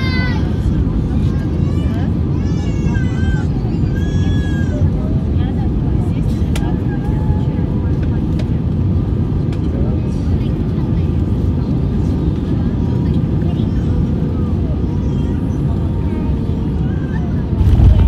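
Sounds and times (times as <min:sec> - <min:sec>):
airplane cabin engine rumble: 0:00.0 - 0:18.0
faint passenger voices: 0:00.0 - 0:18.0.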